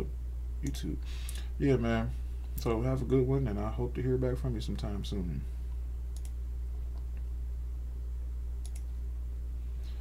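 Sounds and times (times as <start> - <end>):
computer mouse clicks: 6.2 - 7.2, 8.6 - 8.9.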